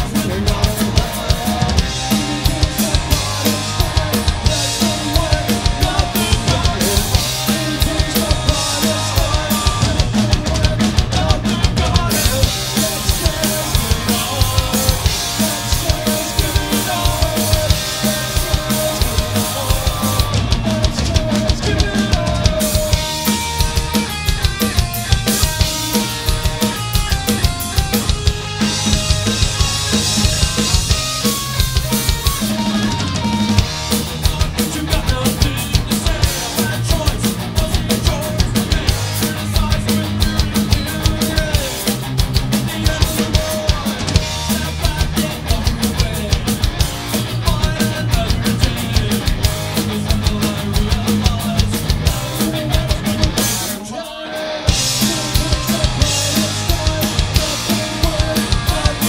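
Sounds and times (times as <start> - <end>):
bass guitar: 0.0 - 59.0
drum kit beat: 0.0 - 59.0
electric guitar: 0.0 - 59.0.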